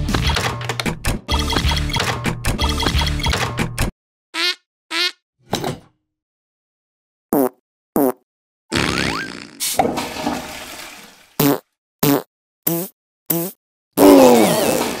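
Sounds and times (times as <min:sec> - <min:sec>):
cartoon fart sounds: 0:07.3 - 0:09.8, 0:11.4 - 0:15.0.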